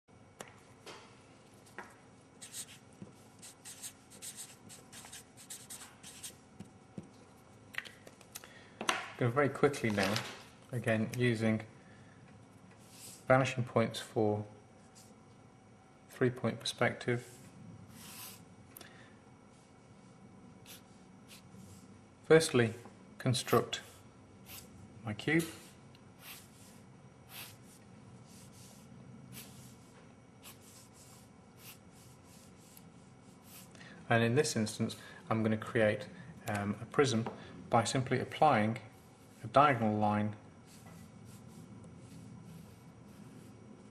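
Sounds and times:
steady low hum: 0.1s - 43.9s
marker pen scratching on paper: 2.4s - 6.7s, 26.2s - 29.8s, 30.4s - 33.7s.

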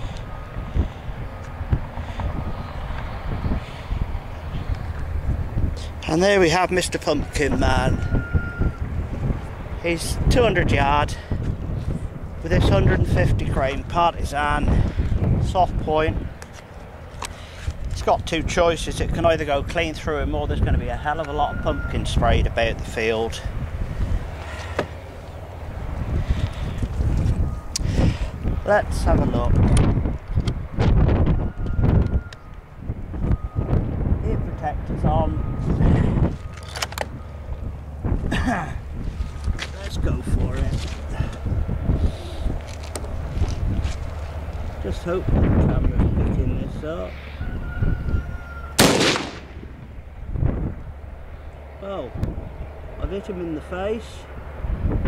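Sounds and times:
wind buffeting microphone: 0.0s - 55.0s
rifle shot: 48.8s - 49.8s.

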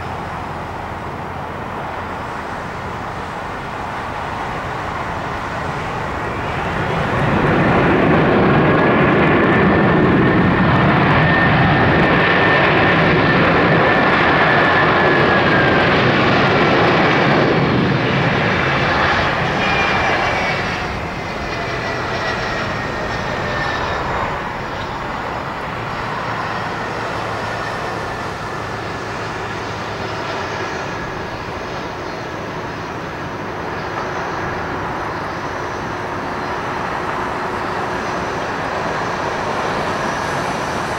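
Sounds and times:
airliner rumbling on runway: 0.0s - 40.9s
jet engines reverse thrust roar: 0.0s - 40.9s.

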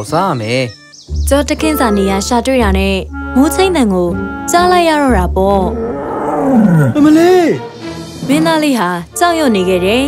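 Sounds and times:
lion-like roar: 5.7s - 7.2s.

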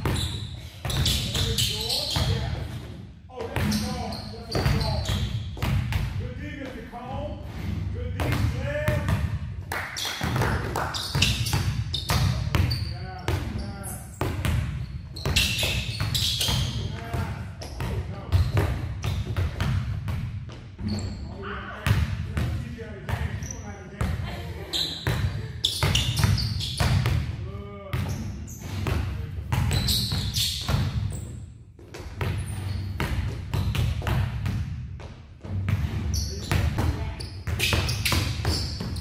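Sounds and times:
basketballs bouncing on gym floor: 0.0s - 6.9s, 8.2s - 21.0s, 21.8s - 39.0s.

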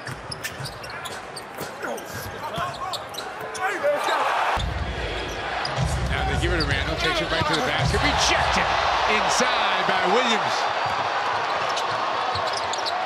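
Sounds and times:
shoes squeaking: 0.0s - 4.2s, 11.6s - 13.0s.

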